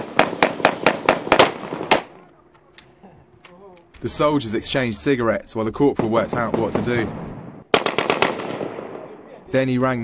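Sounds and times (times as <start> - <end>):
automatic gunfire: 0.0 - 2.1, 7.7 - 9.0
gunfire echo: 0.0 - 2.2, 6.0 - 9.4.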